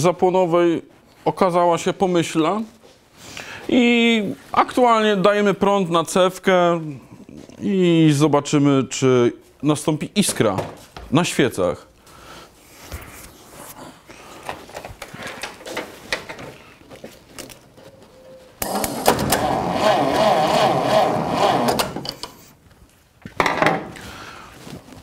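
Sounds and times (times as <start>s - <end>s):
starter motor cranking engine: 18.6s - 22.1s.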